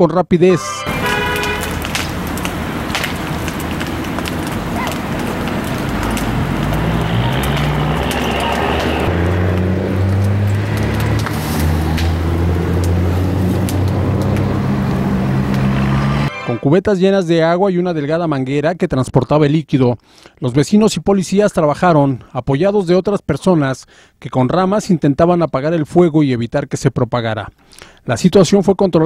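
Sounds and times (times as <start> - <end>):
vehicle engine running: 0.9 - 16.2
scattered clicks: 1.4 - 11.3.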